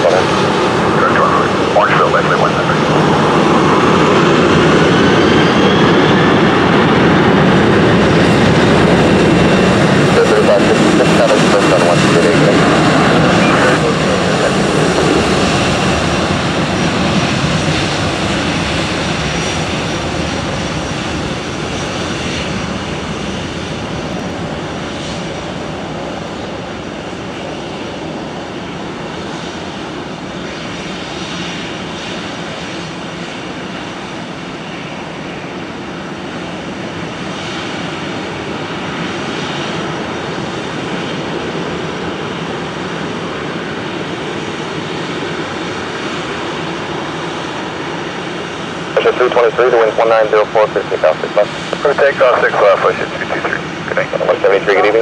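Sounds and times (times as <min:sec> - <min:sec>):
jet engines at takeoff thrust: 0:00.0 - 0:55.0.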